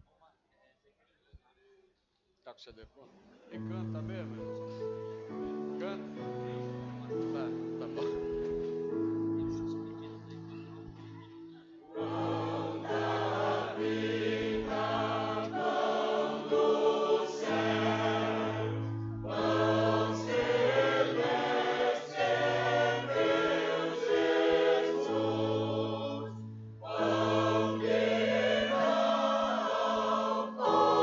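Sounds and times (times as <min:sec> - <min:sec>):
church choir singing a hymn: 0:11.9 - 0:31.0.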